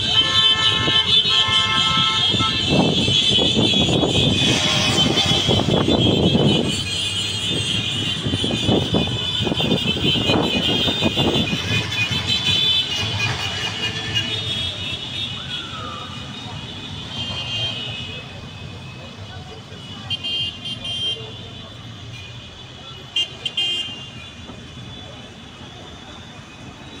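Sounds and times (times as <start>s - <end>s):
vehicle horns honking: 0.0s - 19.0s, 19.6s - 27.0s
street traffic: 0.0s - 27.0s.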